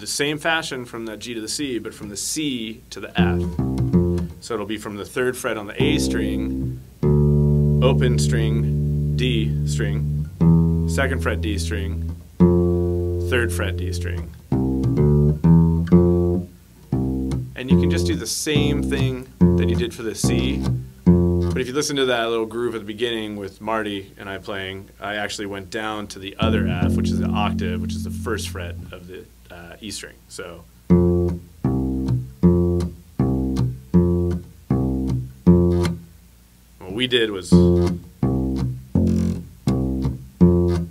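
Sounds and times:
bass guitar plucked notes: 3.2s - 4.4s, 5.8s - 21.7s, 26.4s - 29.1s, 30.9s - 36.0s, 37.6s - 40.9s.

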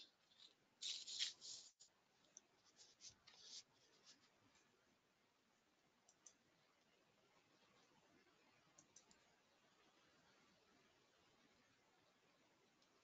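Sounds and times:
faint scratchy noises: 0.0s - 4.9s
faint room hiss: 0.0s - 13.0s.

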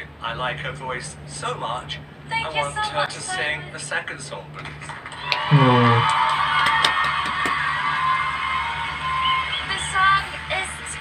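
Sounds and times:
audience applause and cheering: 4.8s - 11.0s.

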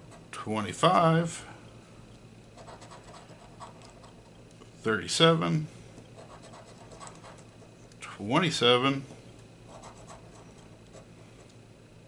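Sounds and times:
coin scraping scratch card: 2.6s - 4.4s, 6.2s - 7.5s, 9.7s - 11.1s.

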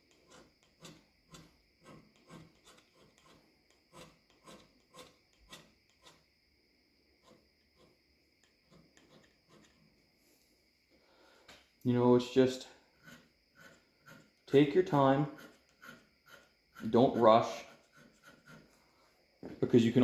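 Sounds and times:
hand scraper on cast iron: 0.0s - 6.2s, 15.2s - 18.8s.

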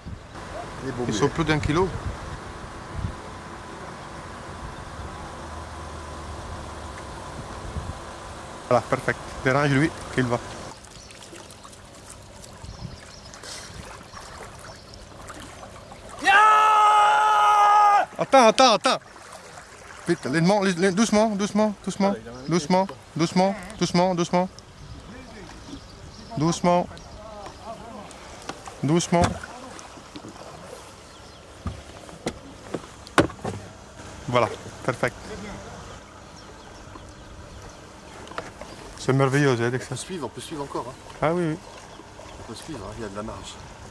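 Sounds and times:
water lapping and trickling: 0.0s - 43.9s
small splashes: 9.8s - 17.1s, 18.0s - 20.7s, 26.9s - 33.4s, 40.5s - 43.9s.

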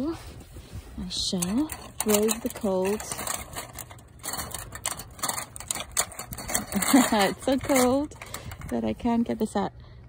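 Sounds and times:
clicks and scrapes of paint tins: 1.3s - 8.9s.

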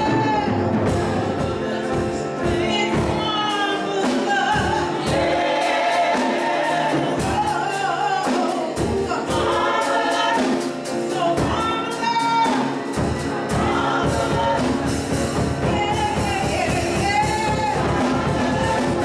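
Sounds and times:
drum kit steady beat: 0.0s - 19.0s
gospel choir singing: 0.0s - 19.0s
piano: 0.0s - 19.0s.

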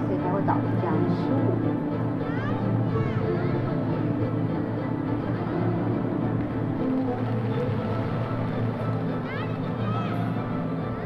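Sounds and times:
background music with low tones: 0.0s - 11.0s.

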